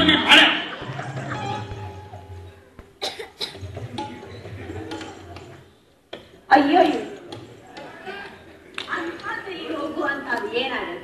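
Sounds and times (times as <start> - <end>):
person coughing: 3.0 - 3.7.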